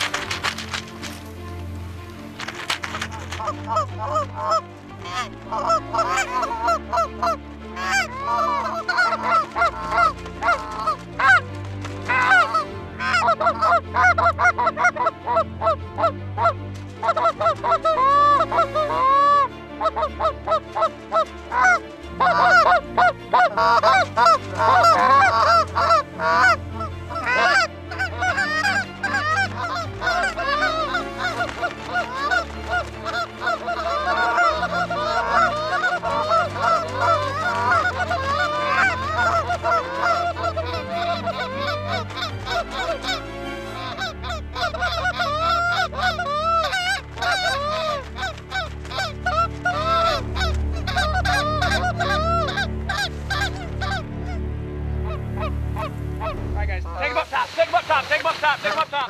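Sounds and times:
goose calls honking and clucking: 0:02.4 - 0:11.4, 0:12.0 - 0:54.4.

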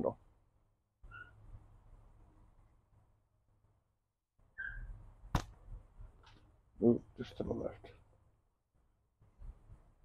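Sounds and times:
faint high chirp: 0:01.0 - 0:01.4, 0:04.5 - 0:05.0.

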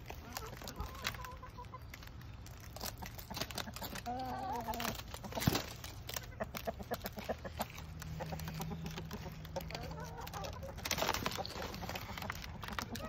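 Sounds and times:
chickens clucking: 0:00.0 - 0:13.0.

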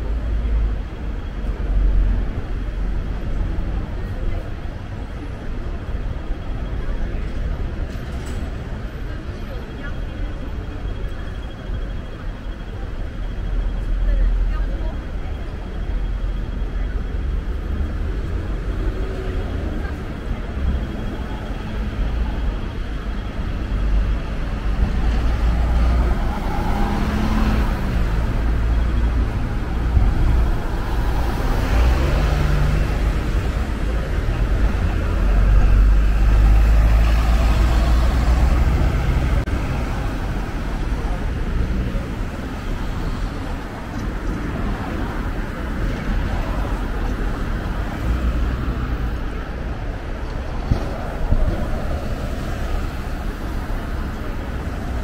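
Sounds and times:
bus engine rumble: 0:00.0 - 0:55.0
road traffic passing: 0:00.0 - 0:55.0.

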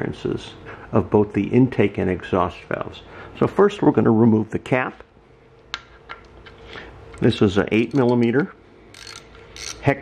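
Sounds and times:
light metallic clicks of ratchet: 0:08.9 - 0:09.8.

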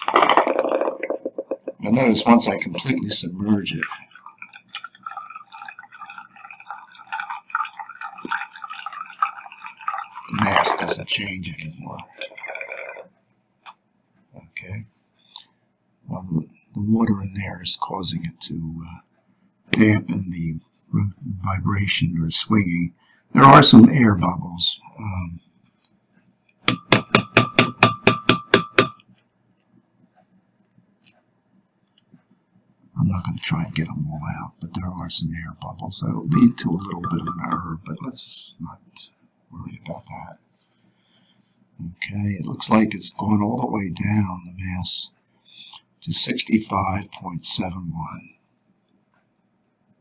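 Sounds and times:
water trickling into a cup: 0:01.7 - 0:13.1, 0:36.3 - 0:37.7
taps on glass measuring cup: 0:26.7 - 0:29.0.

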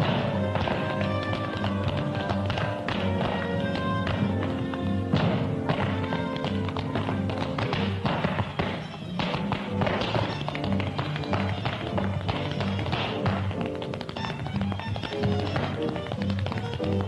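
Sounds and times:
tap shoes clicking: 0:00.0 - 0:17.0.

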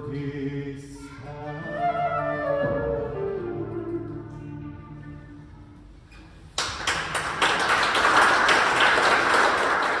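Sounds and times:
audience applauding: 0:06.6 - 0:10.0.

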